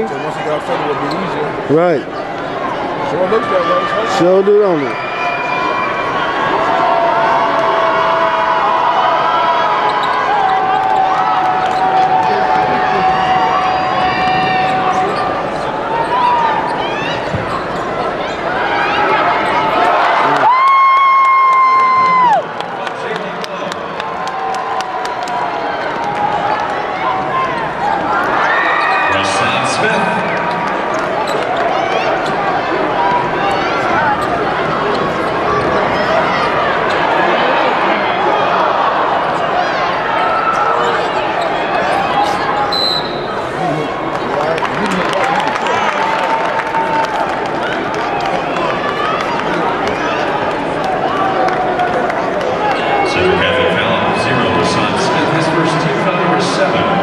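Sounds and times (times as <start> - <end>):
arena crowd chatter: 0.0 - 57.0
sneakers squeaking on court: 9.8 - 10.3, 14.3 - 18.6, 30.3 - 32.6
high whistle: 42.7 - 43.3.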